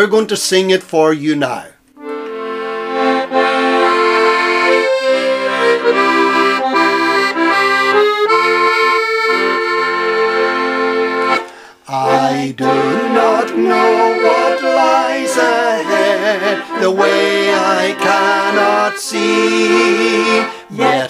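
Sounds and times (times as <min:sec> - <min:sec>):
piano accordion playing chords: 0:01.9 - 0:21.0.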